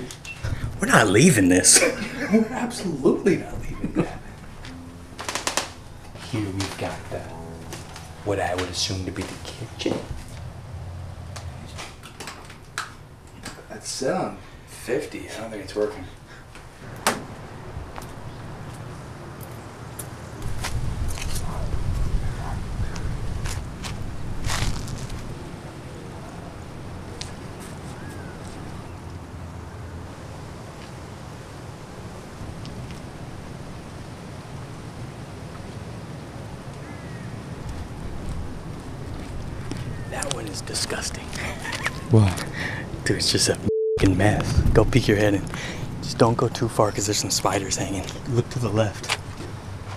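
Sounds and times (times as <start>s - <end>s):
low outdoor rumble: 0.0s - 49.9s.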